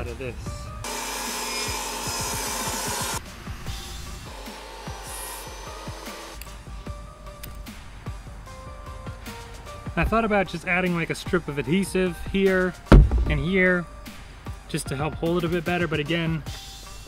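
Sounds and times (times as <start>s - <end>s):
background music: 0.0s - 17.0s
table saw cutting wood: 0.8s - 6.4s.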